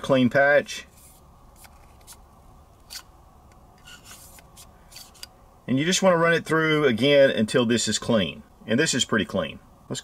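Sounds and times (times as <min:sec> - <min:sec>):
faint scrapes and rustles: 0:00.8 - 0:02.2, 0:03.8 - 0:05.3.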